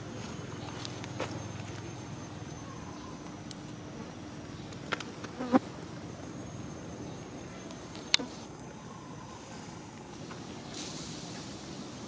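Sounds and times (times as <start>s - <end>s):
insects buzzing: 0.0s - 12.0s.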